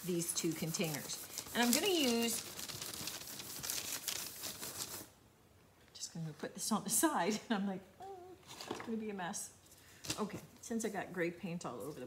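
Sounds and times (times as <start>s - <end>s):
wet wipe scrubbing hard surface: 0.0s - 5.1s.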